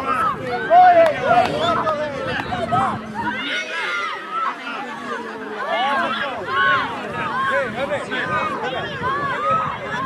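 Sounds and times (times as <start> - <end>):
voices calling out and chattering: 0.0 - 10.0.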